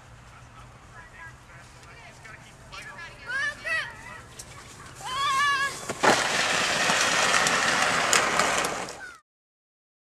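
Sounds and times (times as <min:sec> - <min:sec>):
sled scraping over snow: 0:04.5 - 0:09.2.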